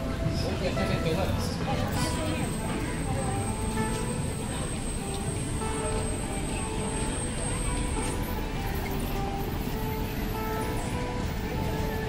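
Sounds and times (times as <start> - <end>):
faint music: 0.0 - 12.0
traffic rumble: 0.0 - 12.0
wind: 0.0 - 12.0.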